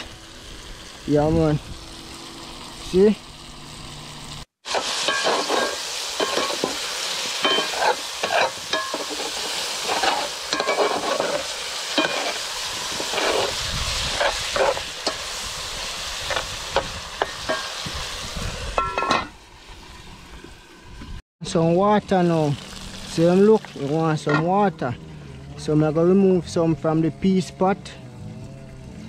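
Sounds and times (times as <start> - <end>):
meat sizzling in a pot: 0.0 - 21.1, 22.1 - 24.7
metal spoon scraping a pot: 7.4 - 15.2.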